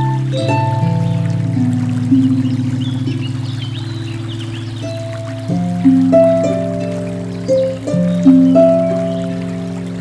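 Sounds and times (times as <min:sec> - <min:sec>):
river rushing: 0:00.0 - 0:10.0
slow solo harp music: 0:00.0 - 0:10.0.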